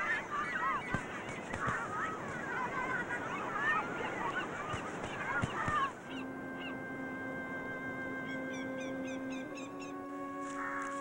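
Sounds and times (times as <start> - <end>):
children shouting at play: 0.0 - 6.2
sustained soundtrack music: 5.9 - 11.0.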